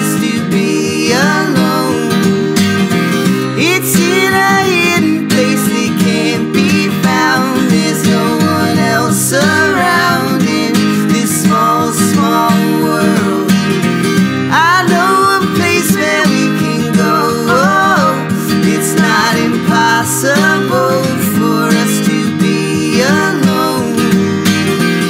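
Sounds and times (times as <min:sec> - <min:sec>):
men singing: 0:00.0 - 0:02.7, 0:03.6 - 0:13.8, 0:14.5 - 0:24.4
strummed acoustic guitar: 0:00.0 - 0:25.0.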